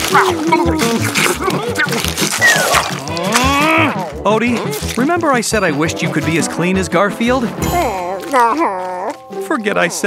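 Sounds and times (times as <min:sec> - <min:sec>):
cartoon character moaning: 0:03.1 - 0:04.9, 0:07.6 - 0:09.3.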